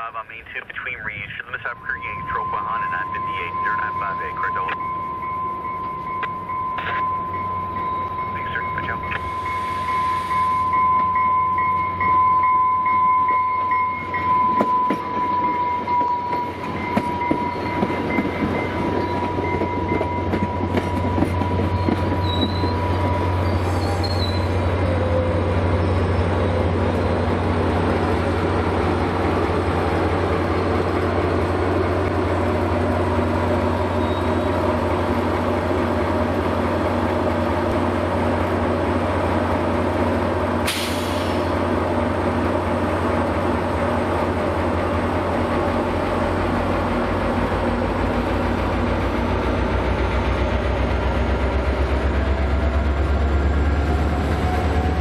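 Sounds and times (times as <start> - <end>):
diesel locomotive drone: 0.0 - 55.0
high wheel squeal: 16.0 - 27.0, 33.8 - 34.7.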